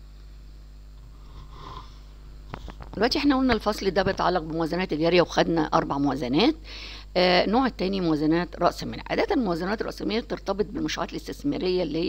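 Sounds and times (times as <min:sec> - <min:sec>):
steady low hum: 0:00.0 - 0:12.0
person breathing in: 0:06.6 - 0:07.1.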